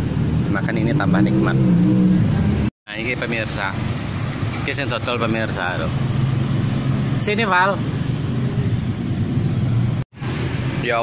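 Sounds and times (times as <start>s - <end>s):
road traffic engine hum: 0.0s - 11.0s.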